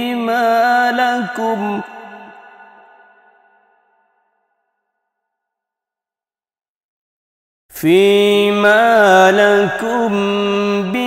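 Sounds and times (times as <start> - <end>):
man chanting recitation: 0.0 - 2.3, 7.8 - 11.0.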